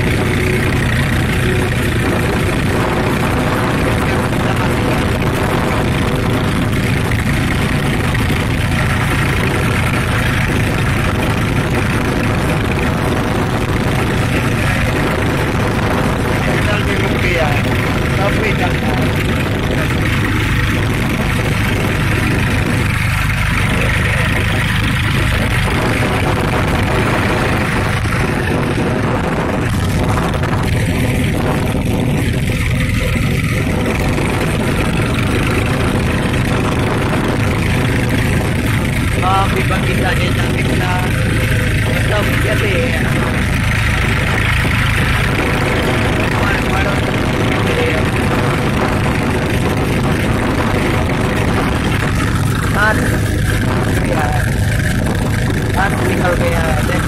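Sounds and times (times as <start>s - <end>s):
tractor engine running: 0.0s - 57.0s.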